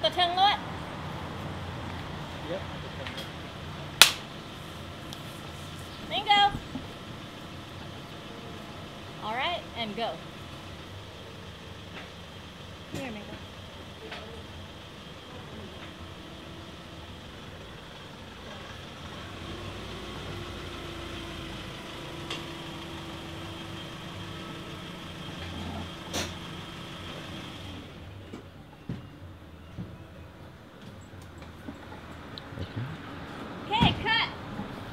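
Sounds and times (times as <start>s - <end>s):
truck engine humming: 0.0s - 34.9s.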